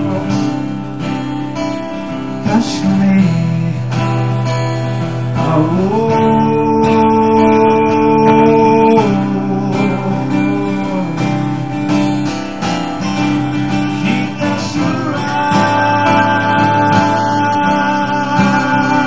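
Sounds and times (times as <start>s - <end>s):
acoustic guitars strumming: 0.0s - 19.0s.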